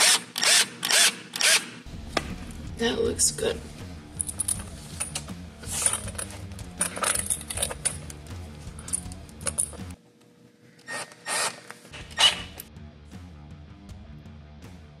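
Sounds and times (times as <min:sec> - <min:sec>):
background music: 0:01.8 - 0:10.1, 0:11.3 - 0:15.0
metal hose clamp scraping and clinking: 0:04.2 - 0:09.9, 0:10.9 - 0:12.7.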